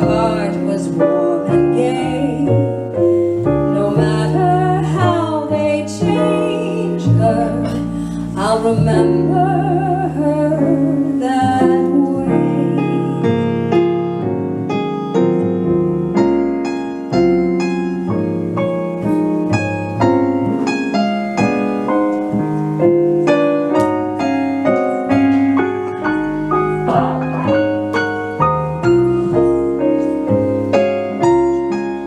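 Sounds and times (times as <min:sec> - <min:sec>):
plucked double bass: 0:00.0 - 0:13.1, 0:23.8 - 0:32.0
jazz piano solo: 0:00.0 - 0:32.0.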